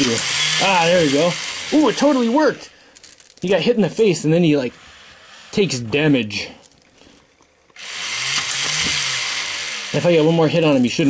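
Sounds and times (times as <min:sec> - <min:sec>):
toy robot motor whirring: 0:00.0 - 0:02.6, 0:07.8 - 0:11.0.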